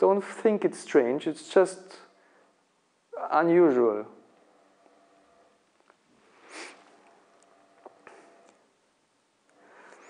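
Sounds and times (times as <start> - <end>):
man sniffing: 6.4 - 7.0.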